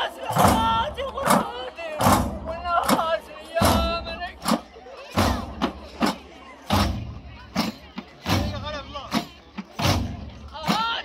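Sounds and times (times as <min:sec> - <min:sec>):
frame drums deep beat: 0:00.0 - 0:11.0.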